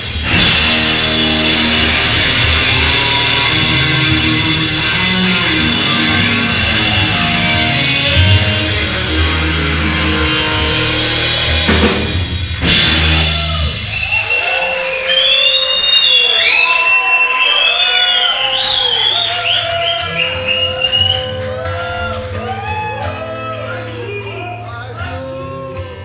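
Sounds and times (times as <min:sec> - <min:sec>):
bending guitar tones ringing: 0:00.0 - 0:11.8
drum hits with cymbals: 0:00.0 - 0:14.4
blues-rock band playing: 0:00.0 - 0:16.6, 0:17.6 - 0:26.0.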